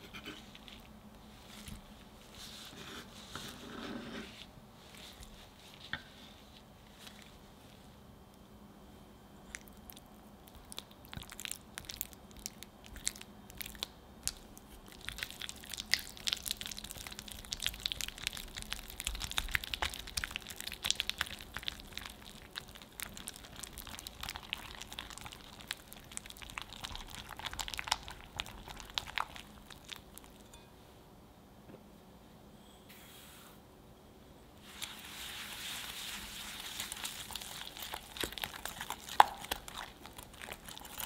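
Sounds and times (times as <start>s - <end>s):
whisk beating cream cheese: 34.9s - 41.0s.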